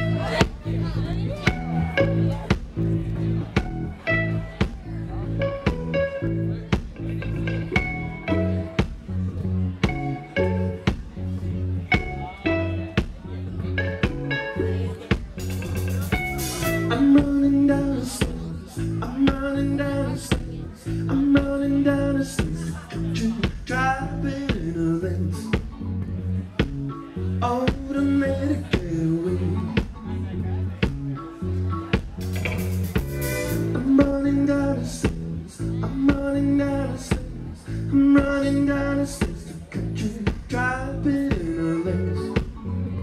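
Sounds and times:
drum kit: 0.0s - 25.9s, 26.5s - 43.0s
bass guitar: 0.0s - 43.0s
electric guitar: 0.0s - 43.0s
live band playing: 0.0s - 43.0s.

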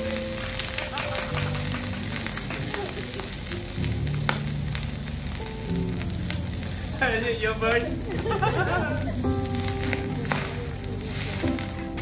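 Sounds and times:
food sizzling on griddle: 0.0s - 12.0s.

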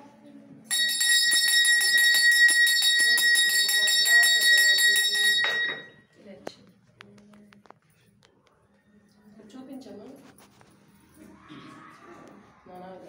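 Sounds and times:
hand bell rung rapidly: 0.7s - 6.0s.

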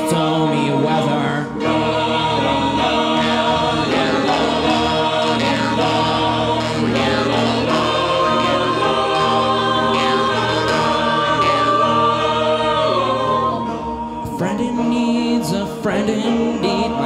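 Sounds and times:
harmonica solo: 0.0s - 17.0s
mixed choir singing: 0.0s - 17.0s.

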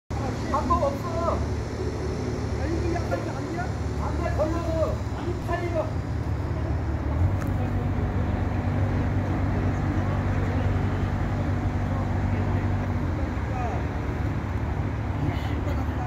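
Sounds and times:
engine humming: 0.1s - 16.0s
faint voices: 0.1s - 16.0s.

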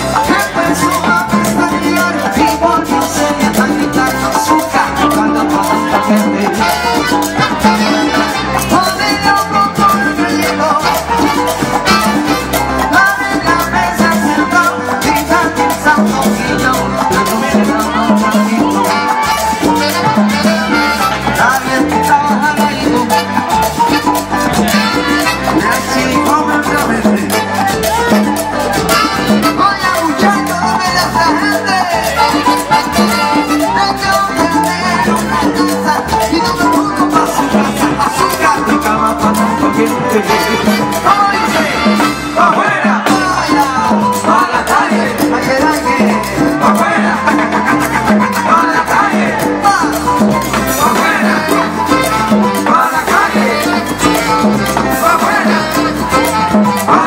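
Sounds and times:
congas: 0.0s - 57.0s
drum kit: 0.0s - 57.0s
live salsa band: 0.0s - 57.0s
trumpet: 0.0s - 57.0s.

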